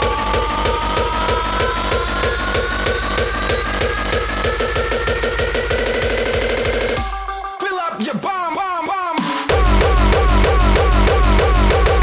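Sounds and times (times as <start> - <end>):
heavy bass: 0.0 - 7.6, 9.5 - 12.0
rising synth line: 0.0 - 7.6.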